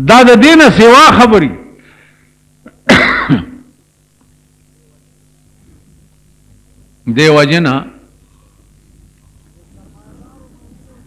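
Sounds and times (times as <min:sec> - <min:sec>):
steady low hum: 0:00.0 - 0:11.0
man clearing throat: 0:02.7 - 0:03.7.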